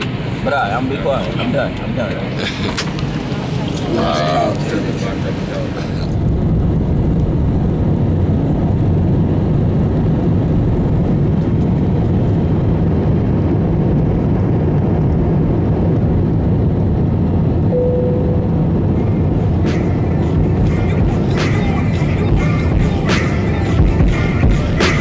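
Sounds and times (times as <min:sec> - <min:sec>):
jet engines rumbling in cabin: 0:00.0 - 0:25.0
short steady tone: 0:17.7 - 0:19.0.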